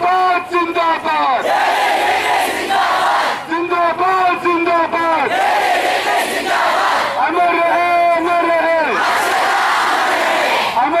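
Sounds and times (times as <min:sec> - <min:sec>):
man shouting through microphone: 0:00.0 - 0:01.4, 0:03.4 - 0:05.3, 0:07.2 - 0:09.0, 0:10.8 - 0:11.0
crowd shouting together: 0:01.4 - 0:03.5, 0:05.2 - 0:07.2, 0:08.8 - 0:10.8.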